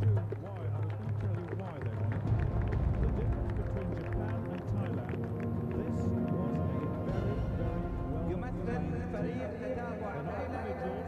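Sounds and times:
sports commentator talking: 0.0s - 11.0s.

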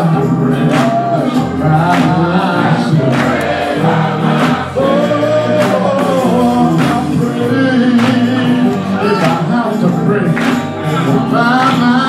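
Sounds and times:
instrumental accompaniment with beat: 0.0s - 12.0s
men's gospel choir singing: 0.0s - 12.0s.

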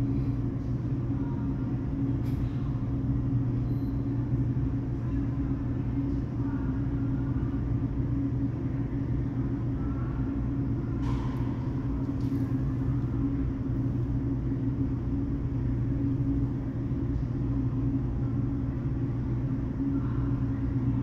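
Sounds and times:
mechanical hum: 0.0s - 21.0s.

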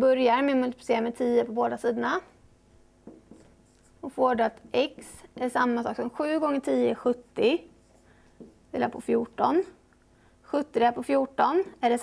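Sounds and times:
person speaking: 3.1s - 9.8s.

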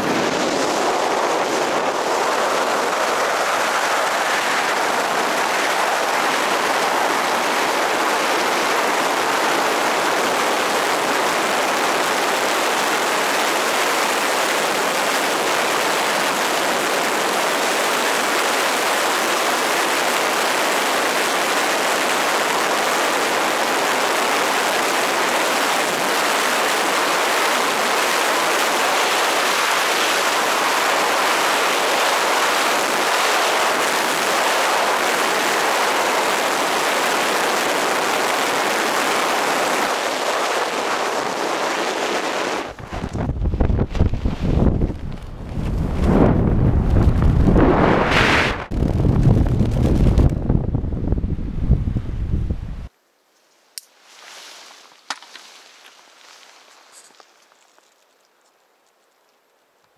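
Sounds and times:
rush of wind: 0.0s - 52.9s.

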